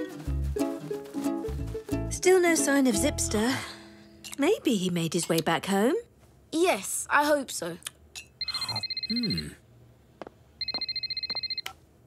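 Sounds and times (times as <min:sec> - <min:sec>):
warbling phone ringtone: 0:08.4 - 0:09.6, 0:10.6 - 0:11.7.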